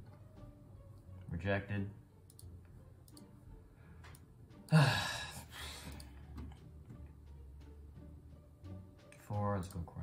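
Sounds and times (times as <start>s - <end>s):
computer mouse clicks: 2.2s - 3.3s, 5.8s - 6.1s.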